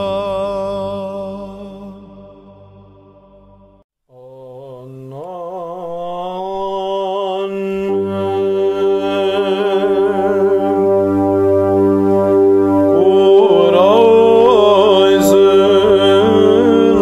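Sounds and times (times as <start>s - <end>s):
low steady vocal drone: 0.0s - 2.8s, 4.1s - 11.4s, 12.9s - 17.0s
person chanting a long vowel: 0.0s - 2.9s, 4.1s - 12.0s, 12.8s - 17.0s.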